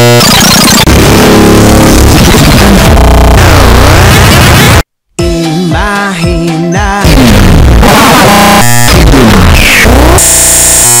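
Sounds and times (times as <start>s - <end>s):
steady buzzing tone: 0.0s - 4.9s, 7.1s - 11.0s
distorted electronic music: 0.0s - 11.0s.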